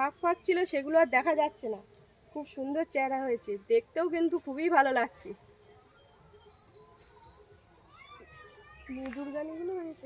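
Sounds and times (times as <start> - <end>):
small bird singing: 5.6 - 9.5.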